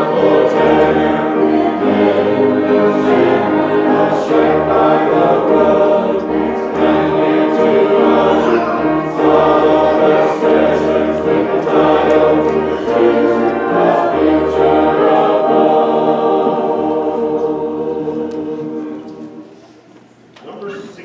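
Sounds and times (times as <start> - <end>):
low held accompaniment notes: 0.0 - 19.9
congregation singing a hymn: 0.0 - 20.0.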